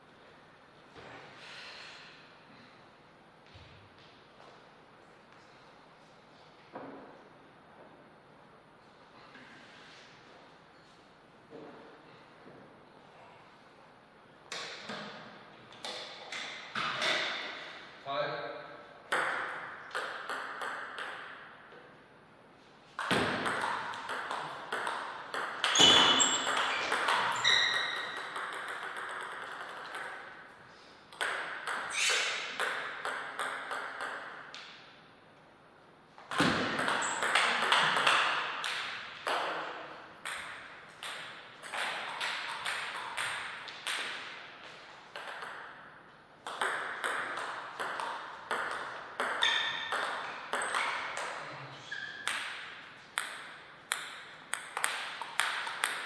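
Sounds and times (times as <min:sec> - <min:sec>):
table tennis ball clicking: 0:23.0 - 0:30.3.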